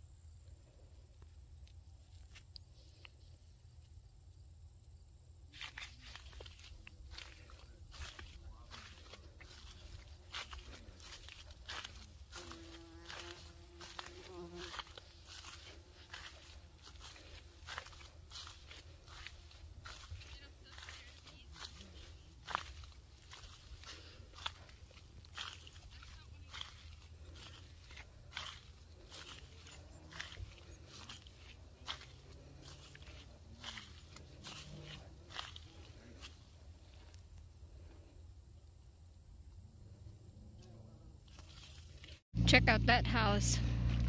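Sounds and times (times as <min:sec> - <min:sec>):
rustle of footsteps: 0:05.5 - 0:38.1, 0:40.6 - 0:42.3
flying insect buzzing: 0:11.7 - 0:18.7
low rumble: 0:42.4 - 0:44.0.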